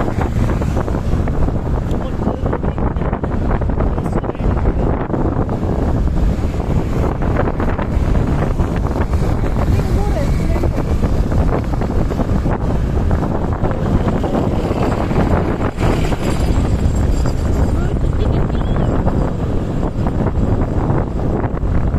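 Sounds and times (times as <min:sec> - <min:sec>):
road and traffic noise: 0:00.0 - 0:21.9
wind buffeting microphone: 0:00.0 - 0:21.9.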